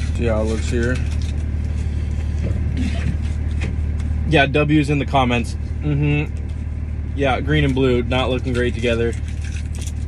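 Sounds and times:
pickup truck engine idling: 0.0s - 10.0s.

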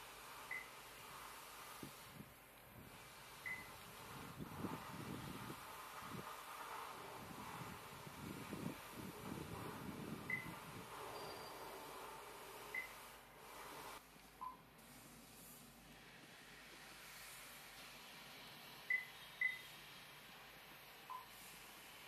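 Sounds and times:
high touchscreen beeps: 3.4s - 3.7s, 10.3s - 10.6s, 12.7s - 12.9s, 18.9s - 19.6s
lower touchscreen beep: 3.4s - 3.7s, 10.3s - 10.6s, 18.9s - 19.6s.

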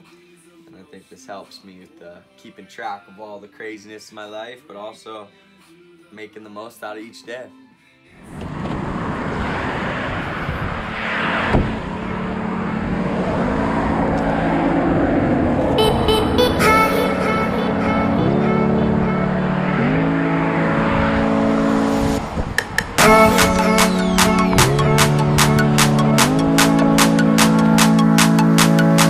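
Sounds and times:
road noise: 8.1s - 29.0s
music with sliding bass: 15.8s - 29.0s.

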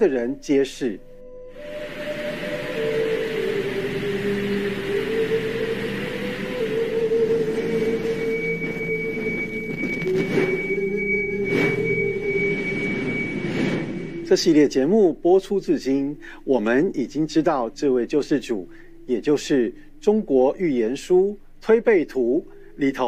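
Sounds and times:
synthesizer pad notes: 0.0s - 14.9s
thin high held tone: 0.0s - 15.0s.

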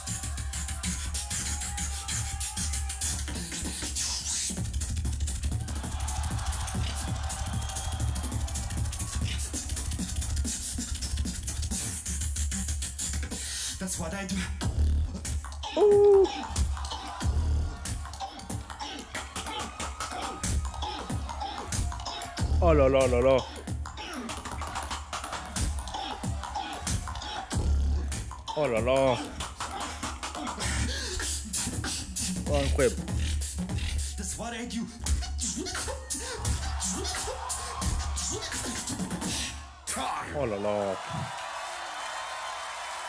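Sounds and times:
beatboxing through a pa: 0.0s - 40.0s.

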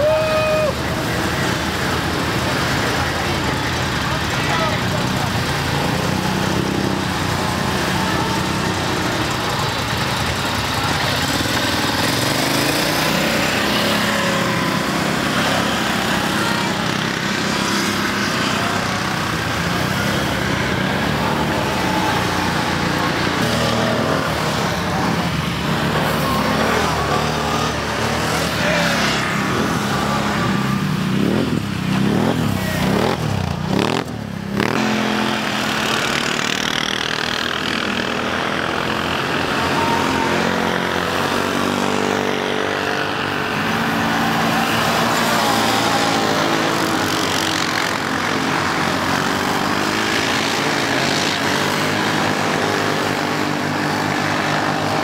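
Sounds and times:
quad engines revving: 0.0s - 55.0s.

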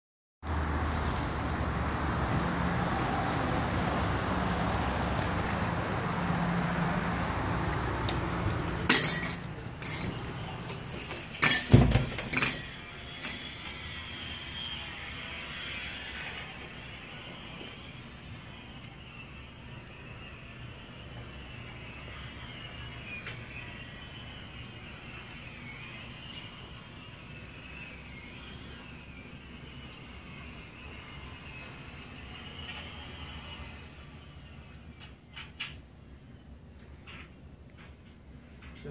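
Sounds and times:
traffic noise: 0.4s - 38.9s
glass door opening and shutting: 8.7s - 12.7s.

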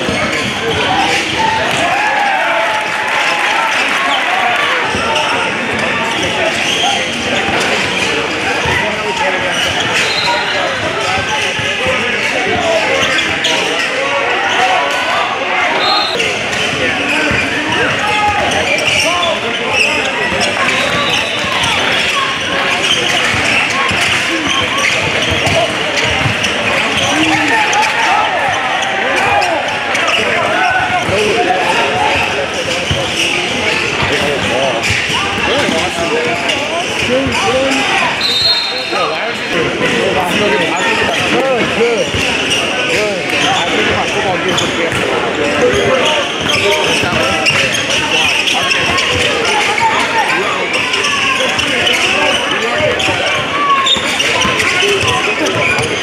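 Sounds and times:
chatter of players and spectators: 0.0s - 56.0s.

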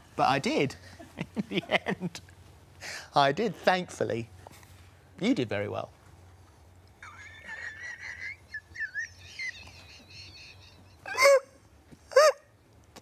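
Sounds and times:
woman's squeaky laughter: 7.0s - 12.4s.

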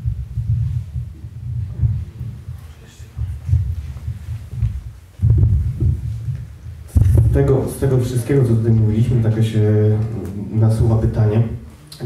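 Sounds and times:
microphone handling thumps: 0.0s - 9.4s.

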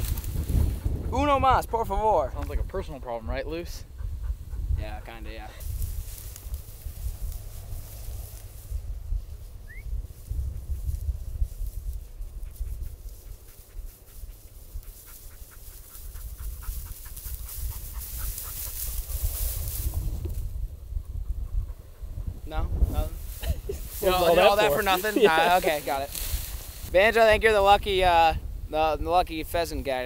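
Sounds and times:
footsteps through dry grass: 0.0s - 1.1s, 5.4s - 20.5s, 23.0s - 27.0s
wind buffeting microphone: 0.0s - 30.0s.

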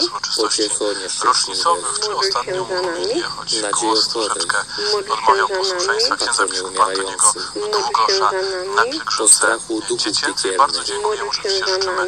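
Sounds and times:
voice reciting prayers on radio: 0.0s - 12.0s.

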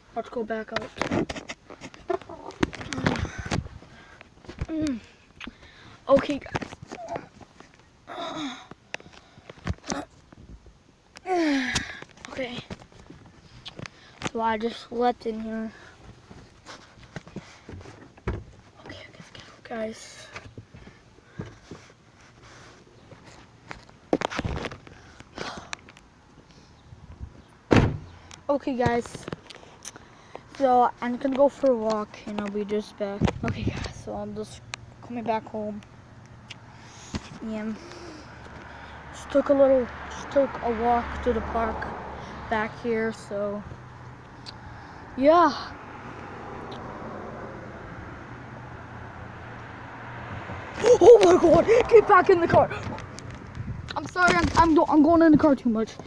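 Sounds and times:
loud thump: 27.7s - 28.1s.

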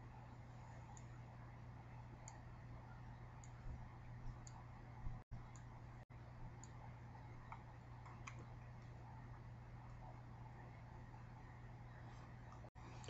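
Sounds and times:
steady low hum: 0.0s - 13.0s
computer mouse clicks: 0.8s - 1.2s, 2.2s - 2.5s, 3.4s - 3.7s, 4.3s - 4.7s, 5.4s - 5.7s, 6.6s - 6.8s, 7.4s - 9.0s.

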